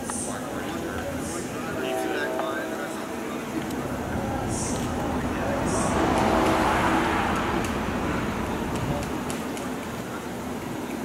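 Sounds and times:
faint voices: 0.0 - 11.0
street traffic noise: 0.0 - 11.0
passing car: 0.3 - 11.0.

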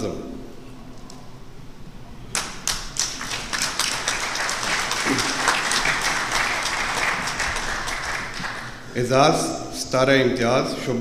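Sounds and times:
audience applause: 2.4 - 8.9.

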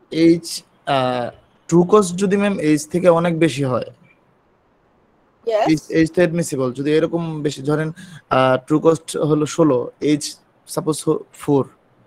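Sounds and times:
person talking: 0.0 - 4.0, 5.5 - 11.7.

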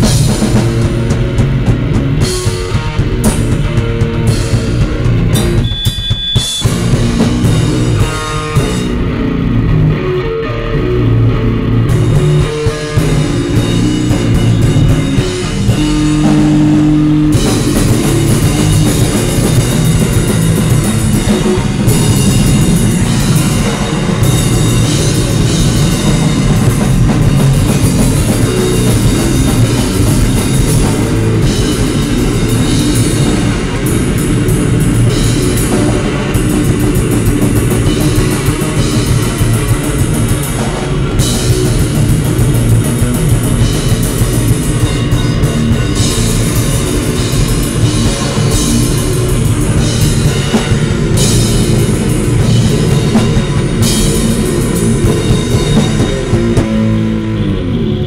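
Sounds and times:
drum kit: 0.0 - 58.0
electric guitar: 0.0 - 58.0.

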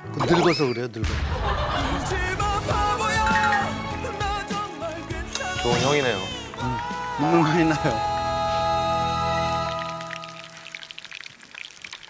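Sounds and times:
background music: 0.0 - 11.2
oil sizzling and popping: 9.6 - 12.0.

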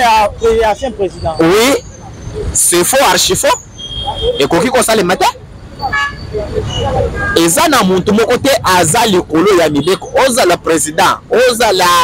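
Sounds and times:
low street traffic rumble: 0.0 - 12.0
vehicle horn toot: 5.8 - 6.4.

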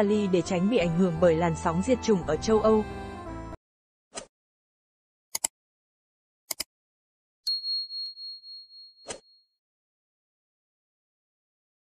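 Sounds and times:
high bell ding: 7.5 - 9.0.

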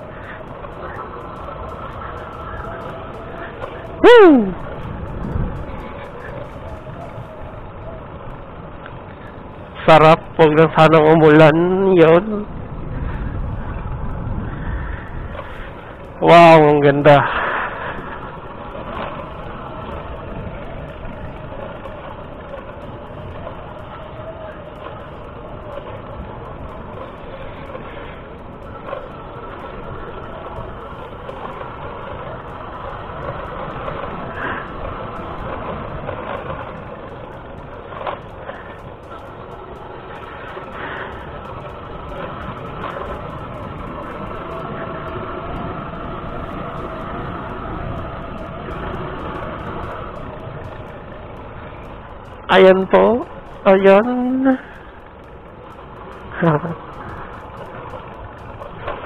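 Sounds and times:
motorcycle engine running: 0.0 - 10.9, 12.2 - 59.0
road noise: 0.0 - 59.0.

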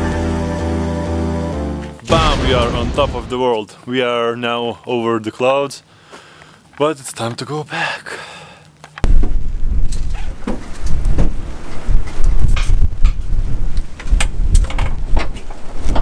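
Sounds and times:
wind buffeting microphone: 9.0 - 16.0.

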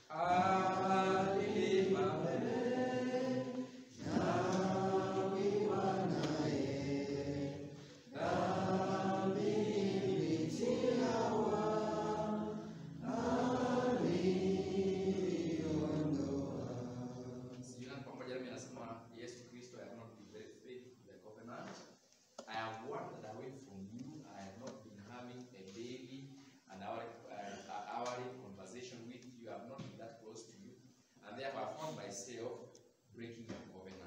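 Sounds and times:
slow church hymn singing: 0.0 - 34.0.

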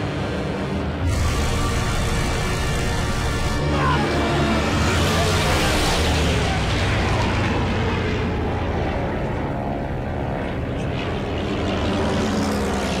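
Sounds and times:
propeller aircraft engines droning: 0.0 - 13.0.

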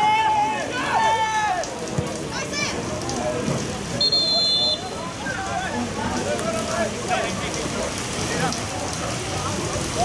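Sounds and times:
spectators' voices: 0.0 - 10.0
referee's whistle blast: 4.0 - 4.9.

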